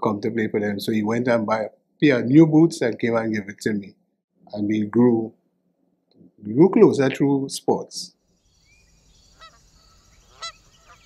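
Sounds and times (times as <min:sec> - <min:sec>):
short honking bird calls: 0:10.3 - 0:11.0.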